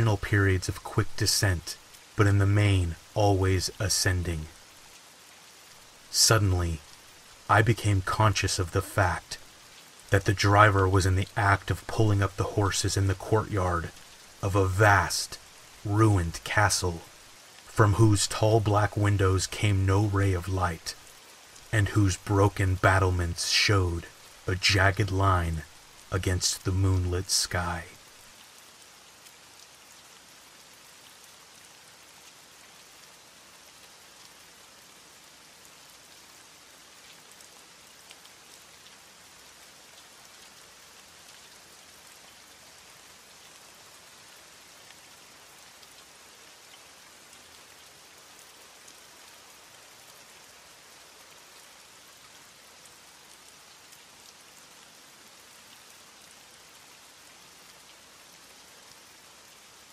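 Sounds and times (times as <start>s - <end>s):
raindrop ticks: 0.0s - 34.9s, 35.7s - 59.1s
steady rain: 0.0s - 59.9s.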